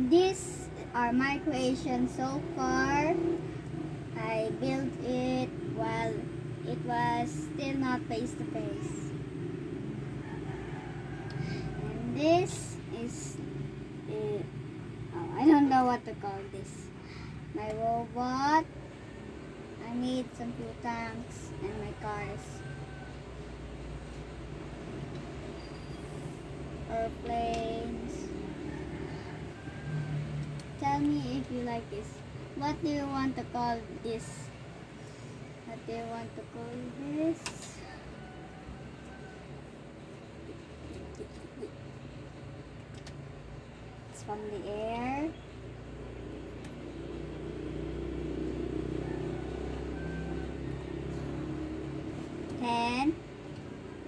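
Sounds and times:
child's voice: 0.0 - 9.2, 11.4 - 18.7, 19.8 - 22.6, 26.8 - 29.4, 30.6 - 34.6, 35.6 - 38.0, 40.8 - 41.8, 44.1 - 45.5, 52.4 - 53.3
engine humming: 0.0 - 54.0
low background rumble: 0.0 - 54.0.

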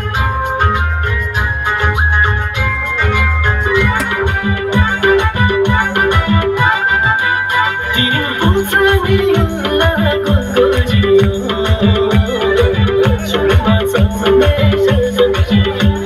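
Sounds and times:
dance music with heavy bass: 3.4 - 7.1, 7.8 - 16.0.

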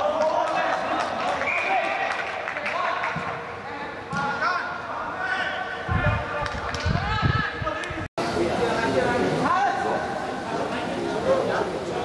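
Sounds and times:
players calling out in echoing hall: 0.0 - 12.0.

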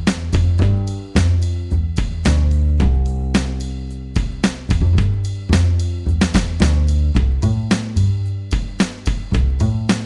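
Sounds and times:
rock drum beat: 0.0 - 10.0
upright bass notes: 0.0 - 10.0.

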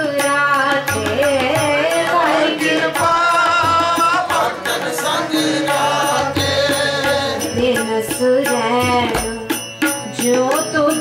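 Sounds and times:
woman singing a devotional hymn: 0.0 - 3.8
tabla: 0.0 - 11.0
voices singing along: 0.9 - 9.1.

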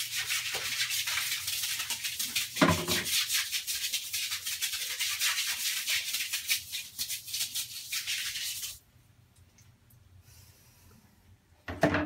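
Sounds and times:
stiff brush scrubbing tiled floor: 0.0 - 8.8.

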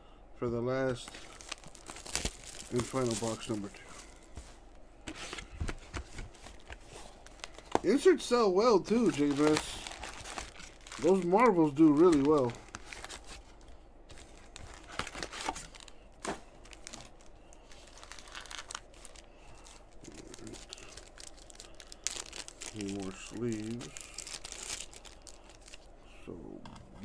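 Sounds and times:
plastic packaging crinkling and tearing: 0.9 - 8.1, 8.9 - 26.0
man murmuring: 20.0 - 20.7.

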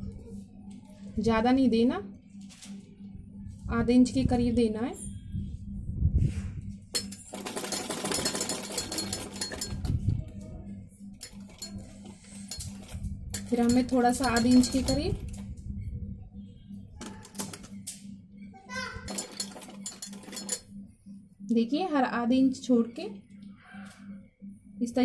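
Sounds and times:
sewing machine stitching: 7.0 - 9.8, 19.1 - 20.6.

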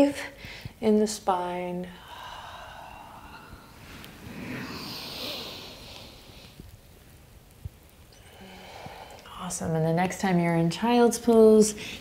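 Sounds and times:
faint breathing: 1.9 - 6.7, 8.1 - 9.4.

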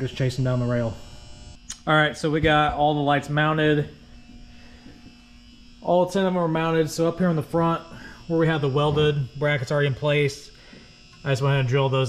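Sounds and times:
man speaking: 0.0 - 1.0, 1.7 - 4.0, 5.8 - 10.5, 11.2 - 12.0.

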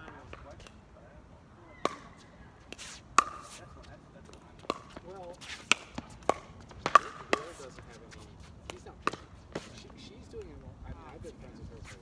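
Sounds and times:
paddles hitting plastic ball: 4.3 - 7.8
ball bouncing on hard court: 5.7 - 7.9.

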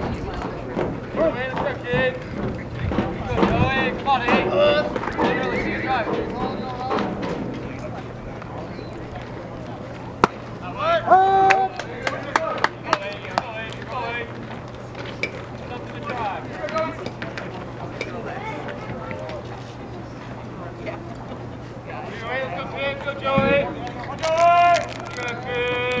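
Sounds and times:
voices: 0.0 - 26.0
loud drawn-out shout: 10.8 - 11.8
sharp claps: 11.5 - 13.5.

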